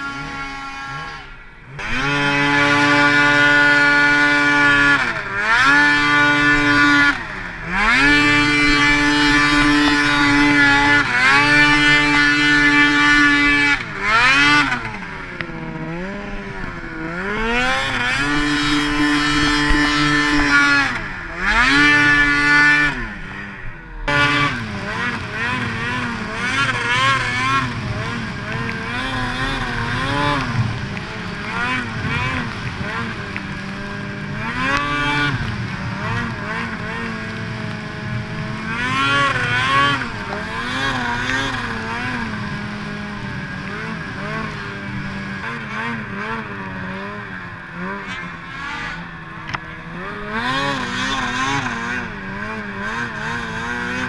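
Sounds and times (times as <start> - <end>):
snowmobile engine revving: 0.0 - 54.0.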